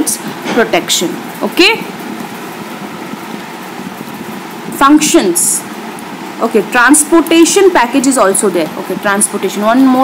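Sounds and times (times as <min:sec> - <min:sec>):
continuous even hiss: 0:00.0 - 0:10.0.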